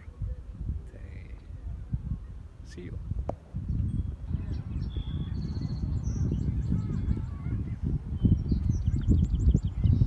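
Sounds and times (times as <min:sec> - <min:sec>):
wind buffeting microphone: 0:00.0 - 0:10.0
birds chirping and whistling: 0:03.6 - 0:10.0.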